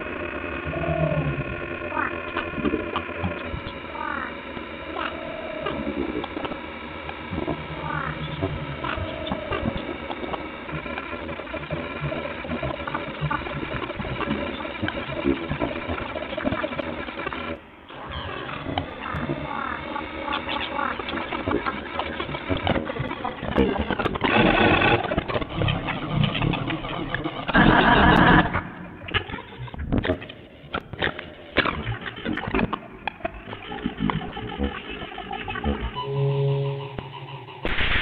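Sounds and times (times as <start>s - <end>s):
crackling grainy noise: 0.0s - 36.1s, 36.8s - 38.0s
glitchy electronic tones and glides: 0.0s - 38.0s.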